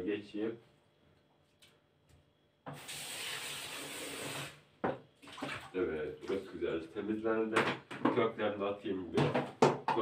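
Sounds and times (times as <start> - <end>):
tap water running and splashing: 2.7 - 6.4.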